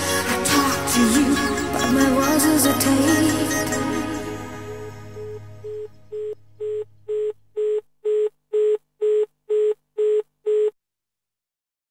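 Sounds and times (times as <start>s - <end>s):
telephone busy tone beeps: 5.1s - 10.8s.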